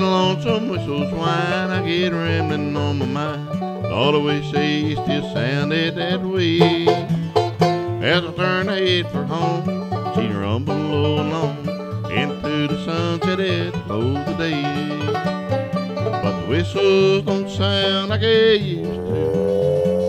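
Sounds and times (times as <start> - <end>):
acoustic guitar rhythm: 0.0 - 20.0
banjo picking: 0.0 - 20.0.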